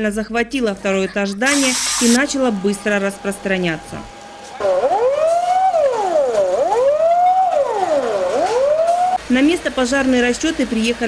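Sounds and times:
fire engine siren wailing: 3.6s - 9.2s.

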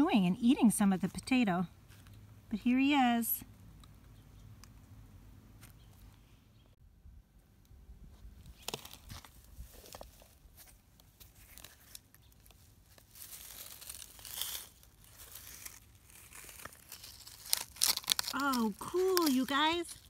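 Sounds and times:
dry grass rustling: 8.1s - 20.0s.

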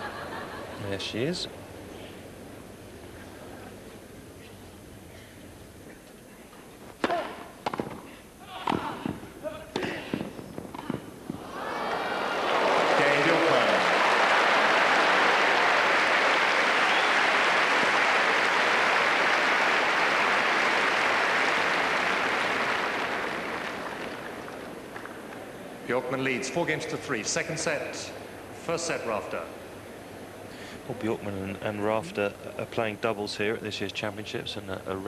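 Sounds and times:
tennis racquet strikes: 7.0s - 11.4s
crowd applause: 11.4s - 25.4s.

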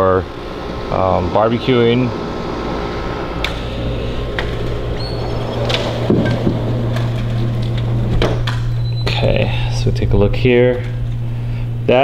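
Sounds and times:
steady low hum: 0.0s - 12.0s
door opening and shutting: 3.2s - 9.4s.

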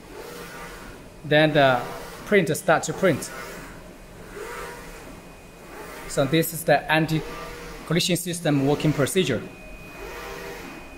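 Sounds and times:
printer carriage motor whir: 0.0s - 10.9s.

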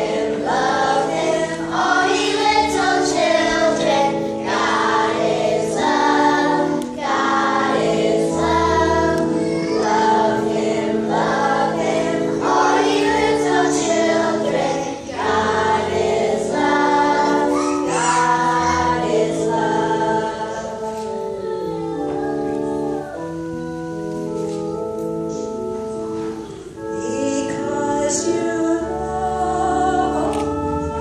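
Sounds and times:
children's choir singing a hymn: 0.0s - 31.0s
held accompaniment chords: 0.0s - 31.0s.

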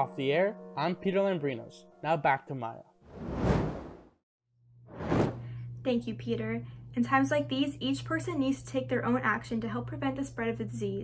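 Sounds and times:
whoosh sound effect: 3.1s - 4.0s, 4.9s - 5.4s.

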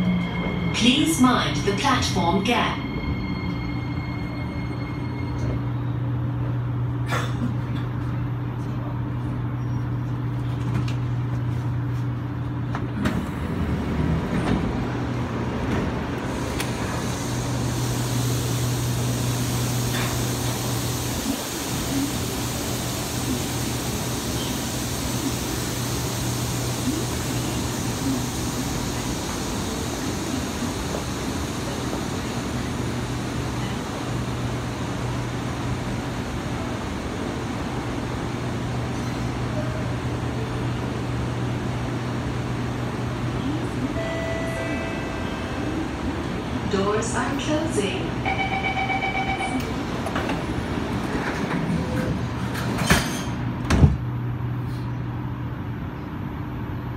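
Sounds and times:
train air-conditioning hum: 0.0s - 56.9s.

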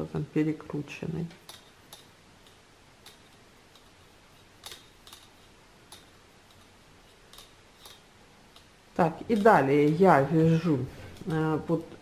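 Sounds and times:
knitting needles clicking: 1.3s - 12.0s.

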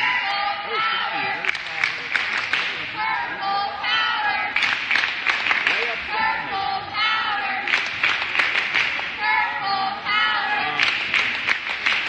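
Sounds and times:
cheerleaders chanting: 0.0s - 1.8s, 2.7s - 4.9s, 5.7s - 11.3s
sharp claps: 1.4s - 2.9s, 4.5s - 6.0s, 7.6s - 9.2s, 10.7s - 12.0s.

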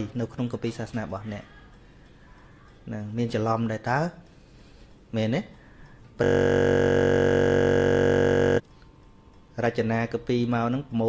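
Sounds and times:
loud electronic buzzing tone: 6.2s - 8.6s.

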